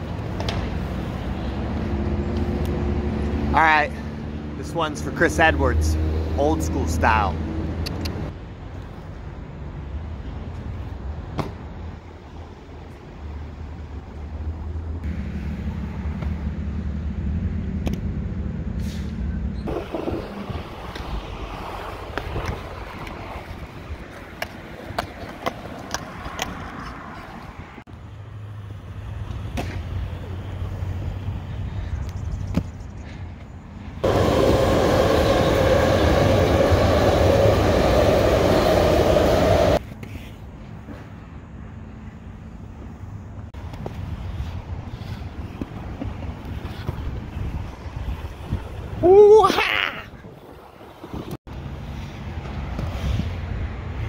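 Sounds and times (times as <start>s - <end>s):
skate wheels rolling on concrete: 0.0s - 3.5s, 8.4s - 18.4s, 19.6s - 41.5s, 42.3s - 49.3s, 50.0s - 54.0s.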